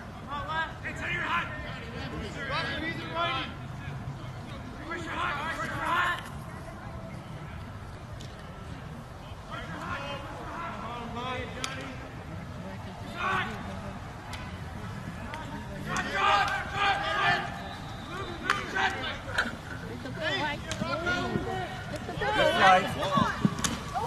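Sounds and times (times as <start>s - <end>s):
voices calling and shouting: 0.0s - 24.0s.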